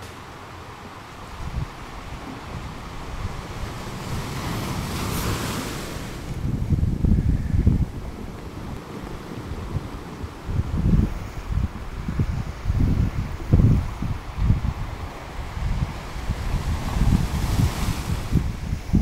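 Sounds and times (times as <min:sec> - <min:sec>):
sea waves washing: 0:00.0 - 0:19.0
wind buffeting microphone: 0:00.0 - 0:19.0.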